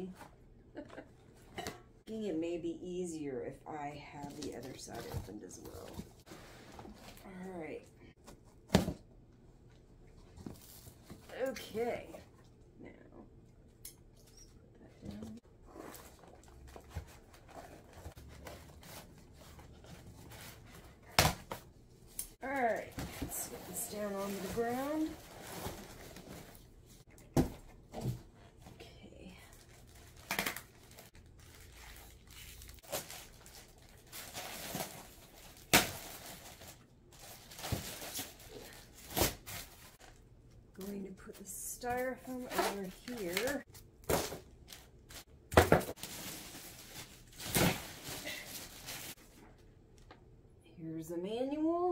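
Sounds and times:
cardboard and styrofoam rustling: 22.4 - 28.2, 29.6 - 40.2, 41.8 - 49.4.

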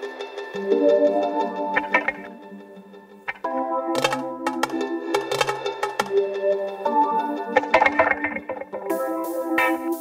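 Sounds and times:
hip-hop soul instrumental: 0.1 - 10.0.

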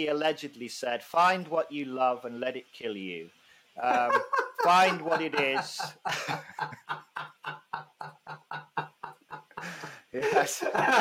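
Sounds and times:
hearty laughter: 3.8 - 11.0.

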